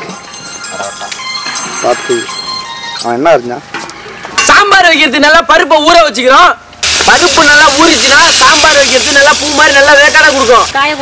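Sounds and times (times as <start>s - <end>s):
people talking: 4.6s - 11.0s.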